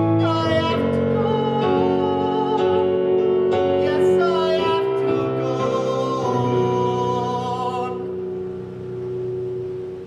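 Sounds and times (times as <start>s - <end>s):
sustained musical chord: 0.0s - 10.0s.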